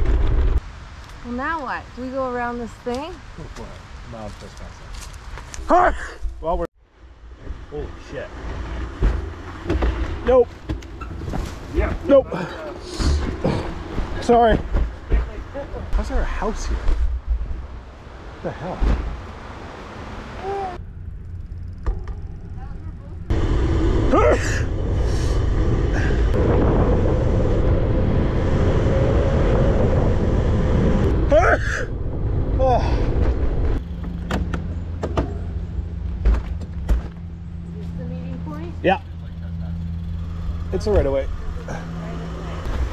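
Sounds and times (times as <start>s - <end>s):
bicycle tyre noise on road: 0.0s - 2.8s, 6.8s - 15.4s, 19.2s - 34.9s
dull thump: 18.7s - 19.2s
microphone handling rumble: 21.6s - 37.4s.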